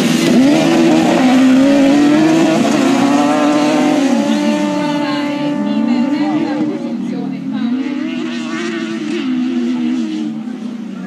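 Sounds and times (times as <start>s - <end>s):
distant race car engines: 0.0s - 11.0s.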